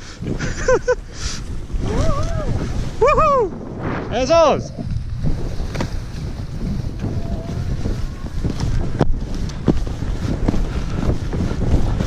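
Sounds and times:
skis running over snow: 0:00.0 - 0:12.0
wind buffeting microphone: 0:00.0 - 0:12.0.

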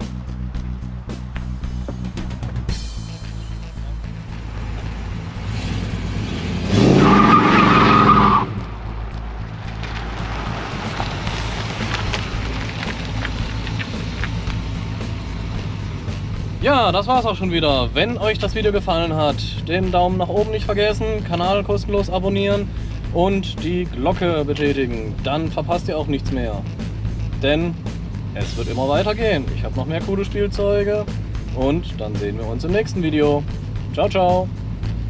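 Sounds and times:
background music: 0:00.0 - 0:35.0
car engine revving hard: 0:04.5 - 0:08.8
tyres squealing: 0:04.6 - 0:08.7.

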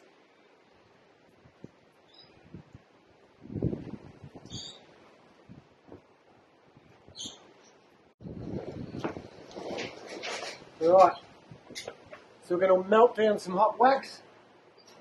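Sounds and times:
high bird chirps: 0:02.1 - 0:02.5, 0:04.4 - 0:04.9, 0:07.1 - 0:07.8.

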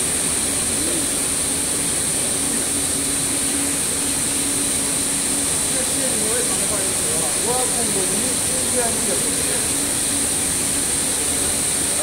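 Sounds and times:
high machinery hiss: 0:00.0 - 0:12.0
low machinery running noise: 0:00.0 - 0:12.0
steady hum: 0:00.0 - 0:12.0.

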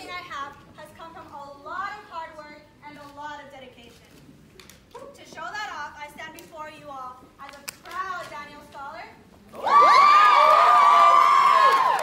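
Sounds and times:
women cheering and screaming: 0:09.6 - 0:12.0.

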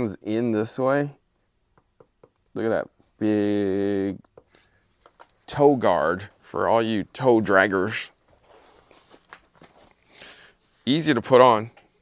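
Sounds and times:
faint rustling of shoes: 0:04.3 - 0:12.0.

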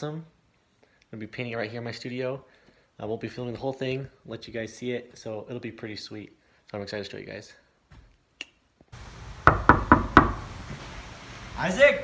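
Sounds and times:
sharp knocks: 0:09.4 - 0:10.5.

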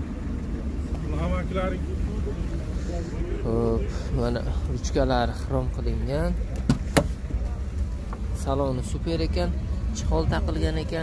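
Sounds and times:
low rumble: 0:00.0 - 0:11.0
men talking: 0:00.7 - 0:11.0.

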